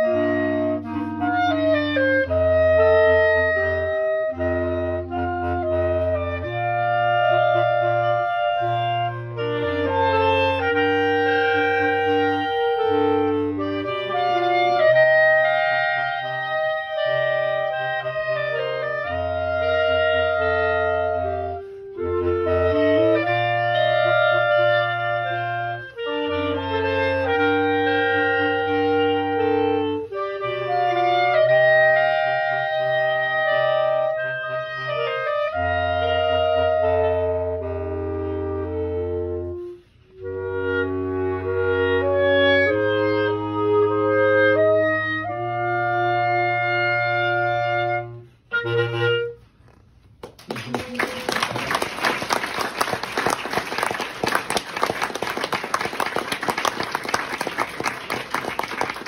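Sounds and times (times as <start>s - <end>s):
clarinets playing melody: 0.0s - 59.0s
low brass held notes: 0.0s - 59.0s.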